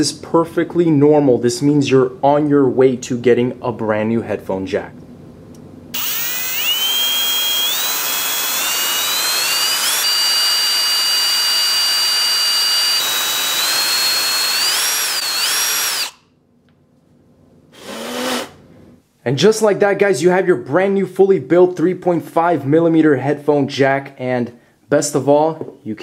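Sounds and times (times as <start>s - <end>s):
power drill motor whine: 6.0s - 16.2s, 17.8s - 18.6s.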